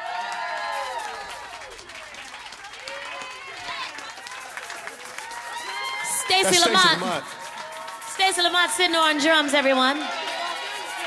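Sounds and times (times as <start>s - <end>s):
audience clapping: 0.0s - 11.0s
crowd cheering and whooping: 0.0s - 11.0s.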